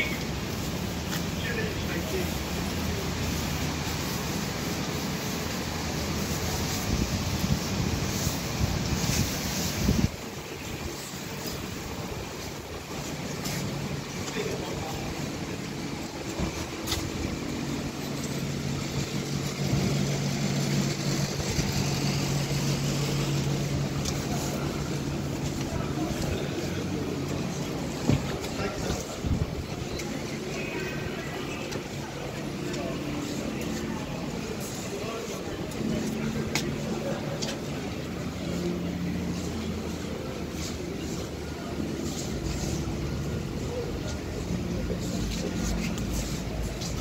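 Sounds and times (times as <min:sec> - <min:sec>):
car engines running: 0:00.0 - 0:47.0
cars passing: 0:00.0 - 0:47.0.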